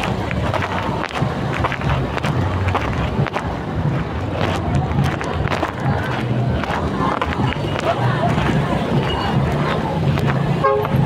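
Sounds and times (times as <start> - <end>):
traffic noise: 0.0 - 11.0
vehicle horn toot: 10.6 - 10.9.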